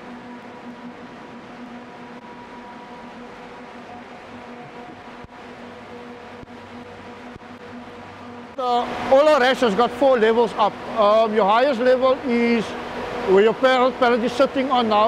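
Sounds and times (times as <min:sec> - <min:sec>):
refrigeration machinery hum: 0:00.0 - 0:15.0.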